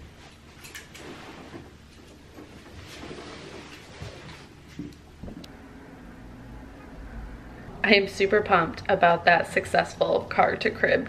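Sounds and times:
low background hum: 0.0 - 11.0
soft rustling: 0.1 - 5.5.

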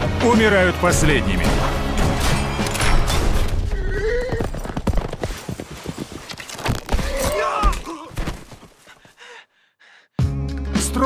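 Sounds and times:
irregular hoofbeats: 3.7 - 6.4.

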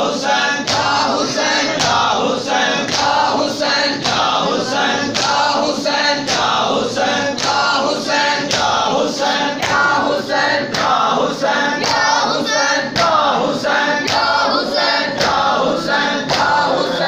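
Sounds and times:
men chanting together: 0.0 - 17.0.

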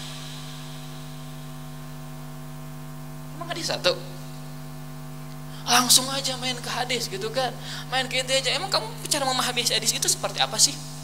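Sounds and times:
faint hiss: 0.0 - 2.4
steady electrical hum: 0.0 - 11.0.

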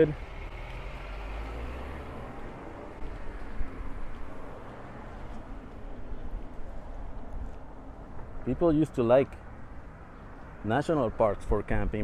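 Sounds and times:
low rumble of traffic: 0.0 - 12.0
street noise: 0.0 - 12.0.

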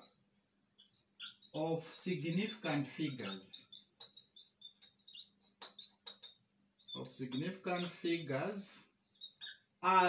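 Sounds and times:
whiteboard marker squeaking: 0.8 - 9.8.

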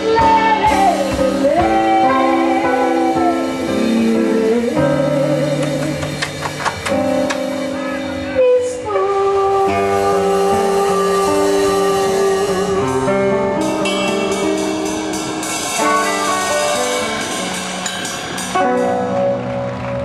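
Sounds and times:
woman singing into microphone: 0.0 - 6.4, 8.2 - 13.8
drum kit: 0.0 - 8.4, 9.5 - 20.0.

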